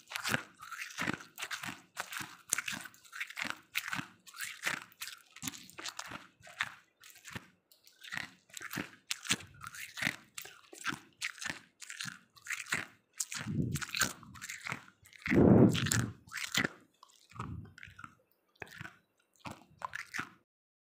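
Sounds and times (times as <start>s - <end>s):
person crunching ice: 0.0s - 20.4s.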